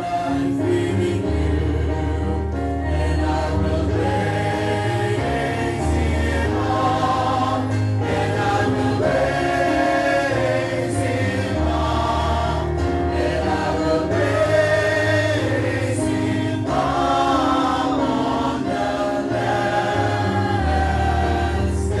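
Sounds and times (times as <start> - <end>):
church choir singing a hymn: 0.0 - 22.0.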